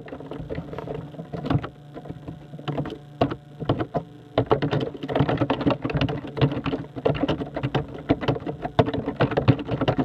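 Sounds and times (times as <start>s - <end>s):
rapid irregular clicking: 0.0s - 10.0s.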